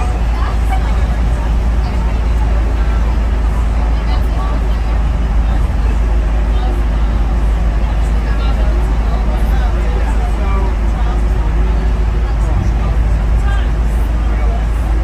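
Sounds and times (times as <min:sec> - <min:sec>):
indistinct voices chattering: 0:00.0 - 0:15.0
vehicle rumble in tunnel: 0:00.0 - 0:15.0.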